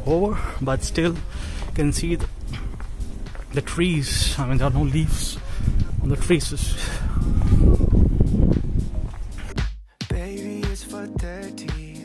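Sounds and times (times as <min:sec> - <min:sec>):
low rumble: 0:06.7 - 0:09.5.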